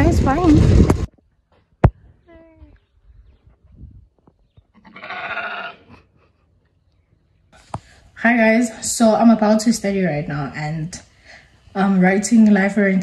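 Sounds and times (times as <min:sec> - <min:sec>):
sheep bleating: 0:04.8 - 0:06.0.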